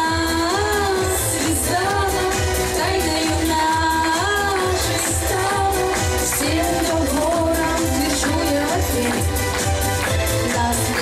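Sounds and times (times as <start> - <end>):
music with steady beat: 0.0 - 11.0
woman singing pop song: 0.0 - 11.0.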